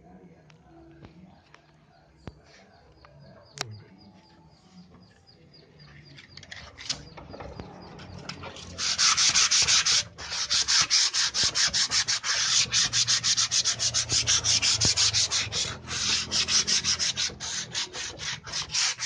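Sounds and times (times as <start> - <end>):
sandpaper sanding wood: 8.6 - 19.0.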